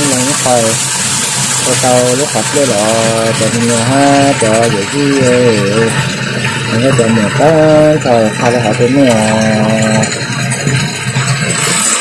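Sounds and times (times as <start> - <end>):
voice: 0.0 - 0.8, 1.7 - 6.0, 6.7 - 10.1
water running into plastic tub: 0.0 - 12.0.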